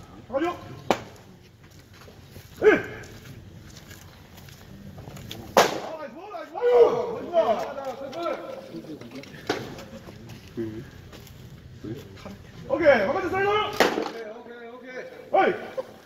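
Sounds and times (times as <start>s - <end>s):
players calling out: 5.6s - 11.0s.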